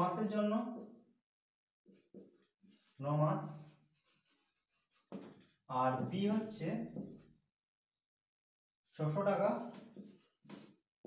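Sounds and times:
marker scratching on whiteboard: 1.9s - 7.4s, 9.7s - 10.8s.

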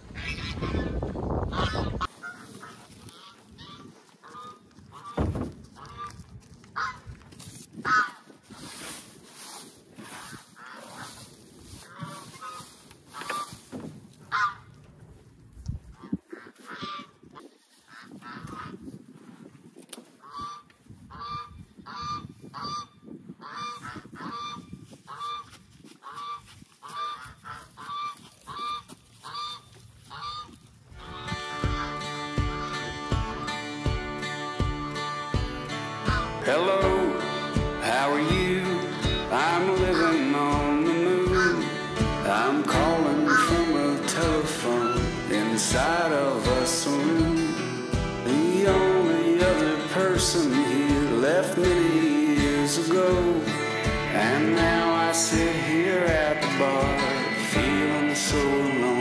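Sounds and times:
honking animal calls: 0.0s - 6.2s, 11.8s - 13.6s, 14.3s - 14.7s, 20.2s - 47.0s.

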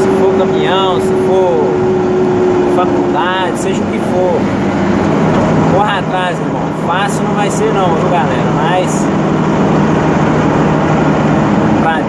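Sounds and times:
road noise: 0.0s - 12.0s
truck engine hum: 0.0s - 12.0s.

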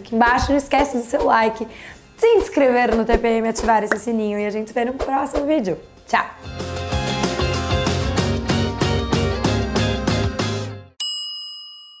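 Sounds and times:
music with steady beat: 6.5s - 10.8s.

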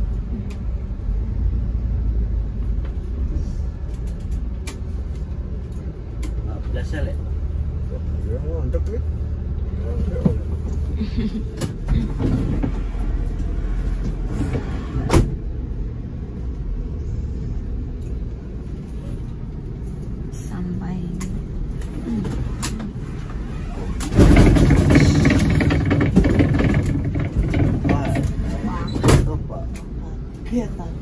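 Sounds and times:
bus engine and road rumble: 0.0s - 31.0s.

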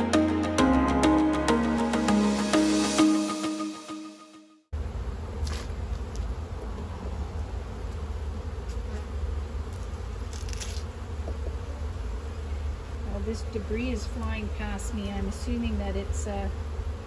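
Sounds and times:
honeybees buzzing: 4.8s - 17.0s.

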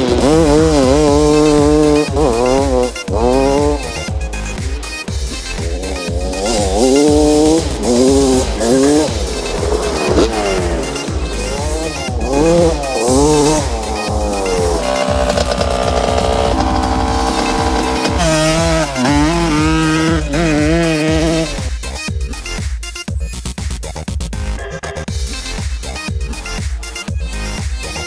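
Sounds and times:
dirt bike engine revving: 0.0s - 22.0s
background music: 0.0s - 28.0s.

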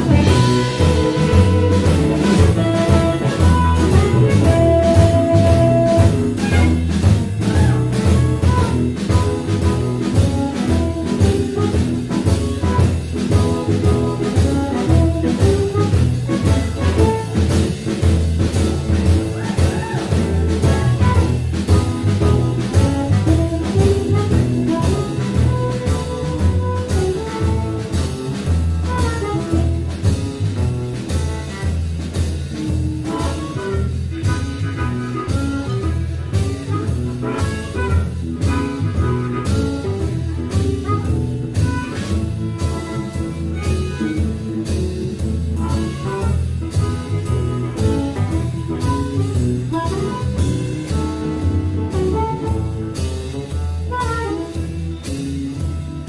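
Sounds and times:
drums and bass: 0.0s - 56.0s
amplified harmonica: 33.2s - 44.6s.

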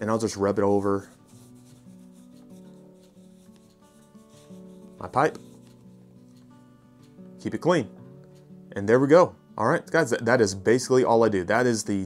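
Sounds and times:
soft background music: 0.0s - 12.0s
cloth rubbing wood: 0.5s - 7.2s.

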